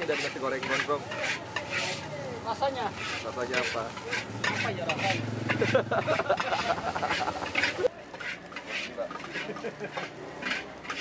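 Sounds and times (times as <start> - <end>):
background chatter: 0.0 - 11.0
frying sizzle: 0.0 - 11.0
metal spatula scraping wok: 0.0 - 11.0
dishes and cutlery clinking: 3.5 - 11.0.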